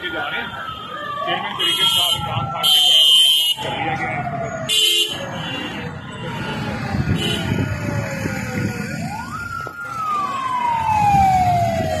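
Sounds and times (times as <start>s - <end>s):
police siren wailing: 0.0s - 12.0s
vehicles running: 3.6s - 12.0s.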